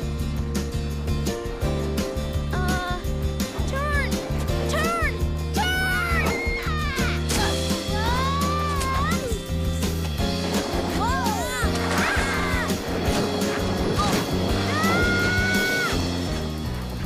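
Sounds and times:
orchestral film score: 0:00.0 - 0:17.0
wordless shouts and cries: 0:03.7 - 0:09.4, 0:14.0 - 0:16.0.

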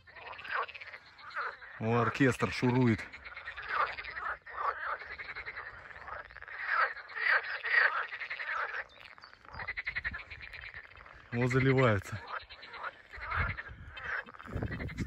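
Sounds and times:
frogs croaking in chorus: 0:00.0 - 0:15.0.

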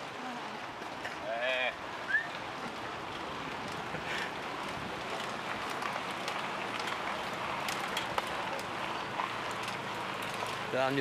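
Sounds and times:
bike tyres on tarmac: 0:00.0 - 0:11.0
bike freewheel clicks: 0:03.1 - 0:11.0.

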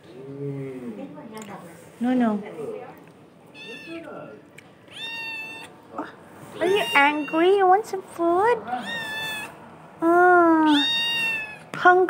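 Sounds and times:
kittens meowing: 0:03.5 - 0:04.1, 0:04.9 - 0:05.7, 0:06.5 - 0:07.6, 0:08.7 - 0:09.6, 0:10.6 - 0:11.7.

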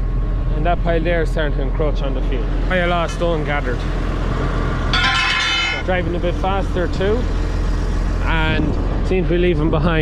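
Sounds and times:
tractor engine running: 0:00.0 - 0:10.0
high steady tone: 0:04.9 - 0:06.0.

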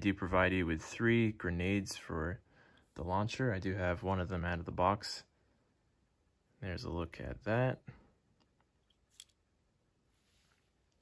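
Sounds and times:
small plastic clicks: 0:08.4 - 0:09.4.

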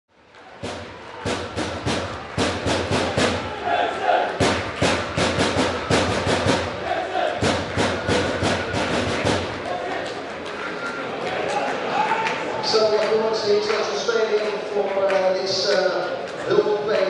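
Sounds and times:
music with fast percussive beat: 0:00.6 - 0:03.6, 0:04.4 - 0:06.8, 0:07.4 - 0:09.7.

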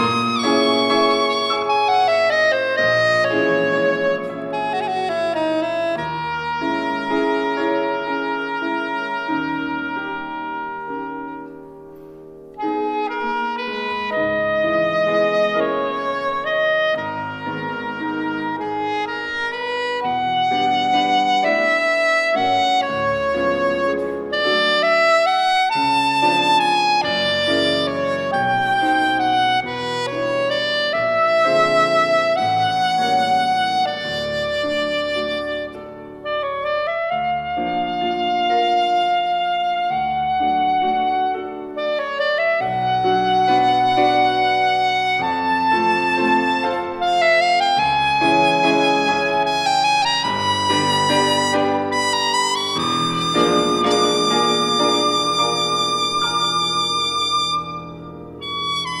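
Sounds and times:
soprano saxophone melody: 0:00.0 - 0:11.8, 0:12.5 - 0:59.0
piano chords: 0:00.0 - 0:59.0.

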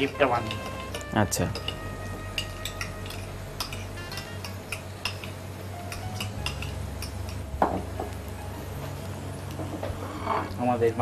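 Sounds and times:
utensil clinking ceramic bowls: 0:00.0 - 0:05.3.

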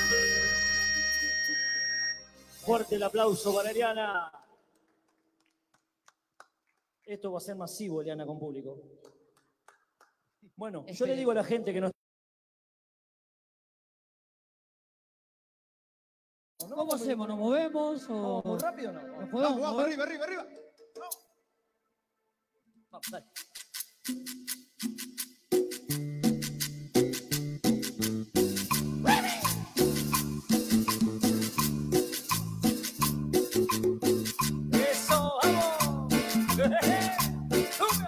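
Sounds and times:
light percussion pattern: 0:00.0 - 0:01.6, 0:23.0 - 0:38.0.

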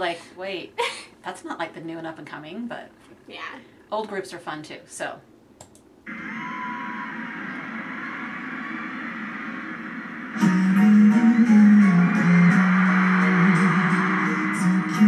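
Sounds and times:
concert music: 0:06.1 - 0:15.0
crowd cheering: 0:06.1 - 0:15.0.

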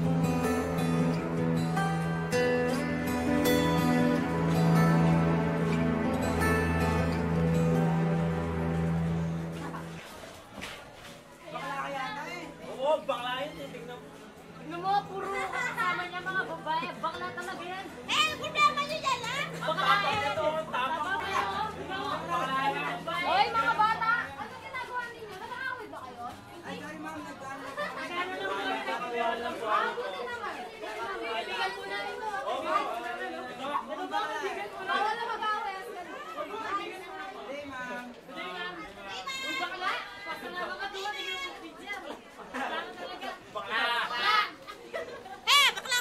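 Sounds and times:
teenagers talking over one another: 0:11.4 - 0:46.0.

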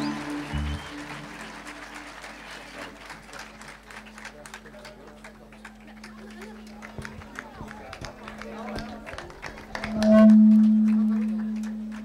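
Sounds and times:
faint crowd murmur: 0:00.0 - 0:12.0.

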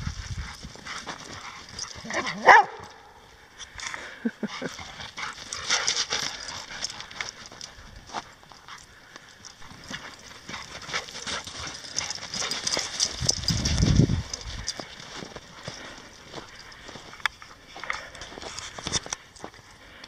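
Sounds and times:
footsteps crunching in snow: 0:00.0 - 0:02.9, 0:09.6 - 0:19.7.

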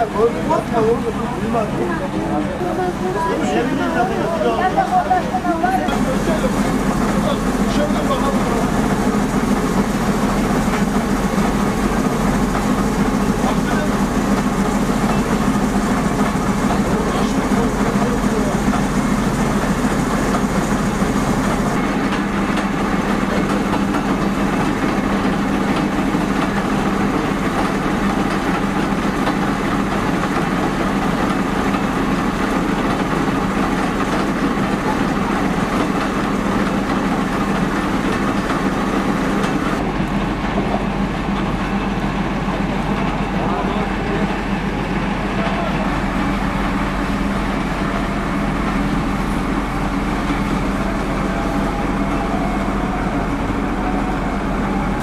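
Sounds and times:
people's voices: 0:00.0 - 0:09.6, 0:12.6 - 0:28.0, 0:42.4 - 0:48.8
fire truck engine and pump running: 0:00.0 - 0:55.0.

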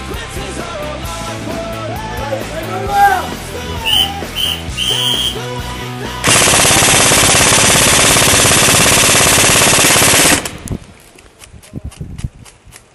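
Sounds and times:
airsoft rifle full-auto burst: 0:06.2 - 0:10.7.

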